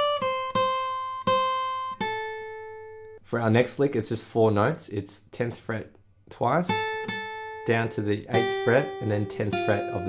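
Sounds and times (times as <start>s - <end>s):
acoustic guitar picked notes: 0.0s - 3.2s, 6.7s - 10.0s.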